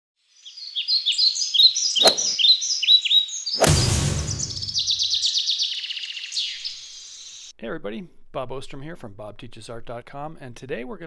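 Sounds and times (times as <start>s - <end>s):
birds chirping: 0.3s - 7.5s
whoosh with low thump: 3.6s - 5.0s.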